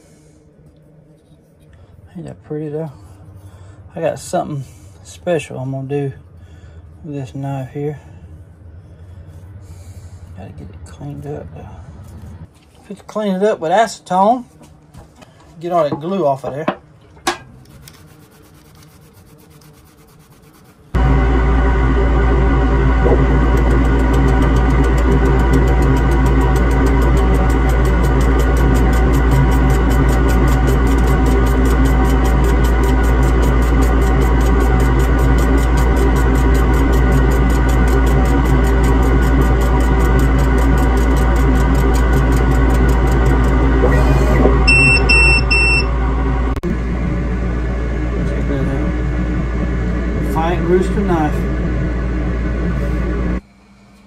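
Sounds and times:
synthesizer drone: 0:20.9 - 0:53.4
high beeps: 0:44.6 - 0:45.9.

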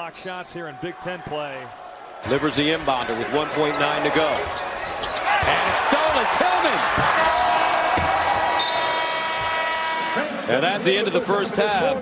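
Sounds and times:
crowd noise: 0:00.0 - 0:12.0.

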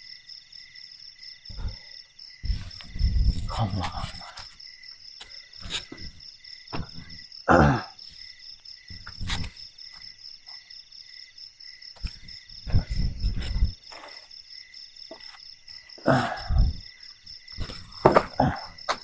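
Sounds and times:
crickets chirring: 0:00.0 - 0:19.0
camping gear rustling and knocking: 0:02.4 - 0:07.3, 0:12.0 - 0:14.4, 0:15.0 - 0:15.8, 0:17.2 - 0:19.0.

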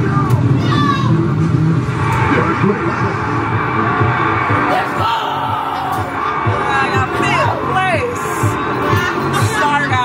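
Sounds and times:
arcade game car engine revving: 0:01.2 - 0:09.1.

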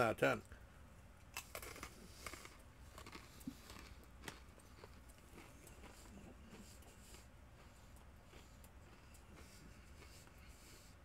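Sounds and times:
person chewing crunchy pretzels: 0:01.3 - 0:11.0.

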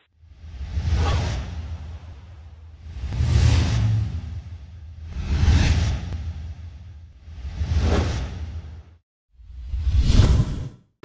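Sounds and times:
whoosh transition effects: 0:00.2 - 0:08.9.

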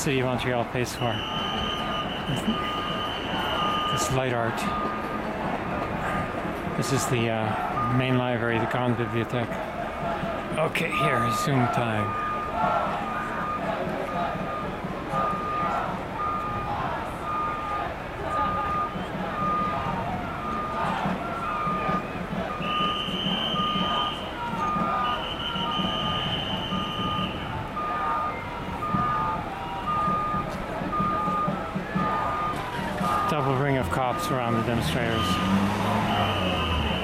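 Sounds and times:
distant voices: 0:00.0 - 0:37.0
engines idling: 0:00.0 - 0:37.0
reversing alarm beeping: 0:00.0 - 0:37.0.

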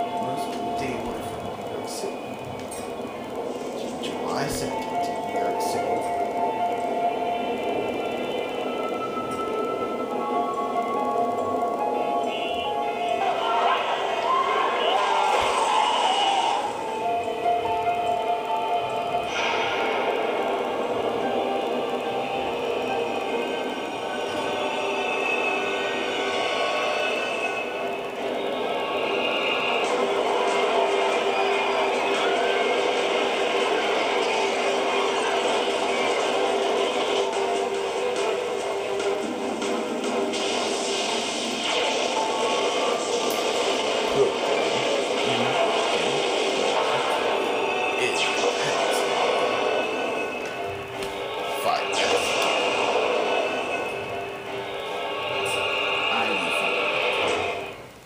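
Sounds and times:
trailer music through tv speaker: 0:00.0 - 0:58.0.

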